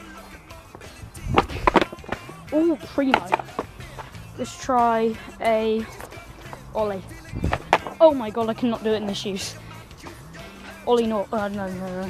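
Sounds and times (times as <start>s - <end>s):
skateboard clacking on paving: 0.0s - 9.4s
quiet background music: 0.0s - 12.0s.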